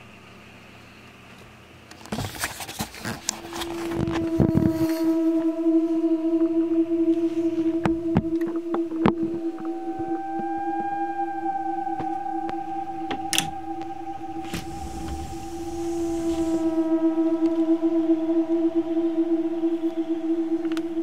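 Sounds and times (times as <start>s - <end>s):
steady droning tones: 3.0s - 21.0s
higher tone rising and falling: 3.3s - 21.0s.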